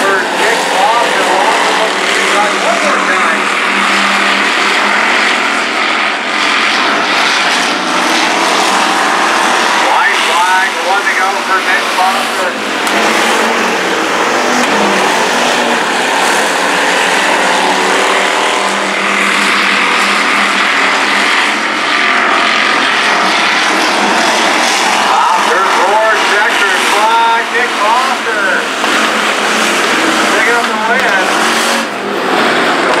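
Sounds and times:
race car engines droning: 0:00.0 - 0:33.0.

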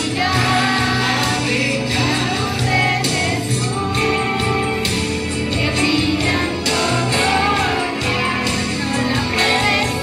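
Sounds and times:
choir singing with music: 0:00.0 - 0:10.0.

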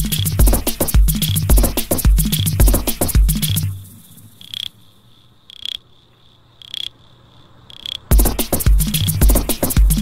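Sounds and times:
techno beat with heavy kick drum: 0:00.0 - 0:03.9, 0:08.1 - 0:10.0.

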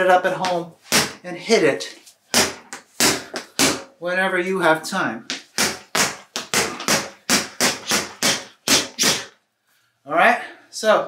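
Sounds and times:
gloves punching water bag: 0:00.4 - 0:01.2, 0:02.3 - 0:04.0, 0:05.3 - 0:09.4.

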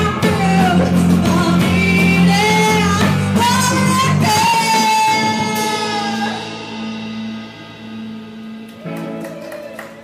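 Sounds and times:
woman singing: 0:00.0 - 0:06.6
bass guitar: 0:00.0 - 0:10.0
drum kit playing: 0:00.0 - 0:10.0
electric guitars: 0:00.0 - 0:10.0.

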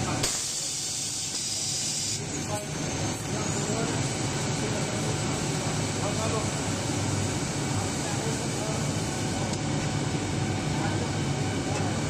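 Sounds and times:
faint high machine whine: 0:00.0 - 0:12.0.

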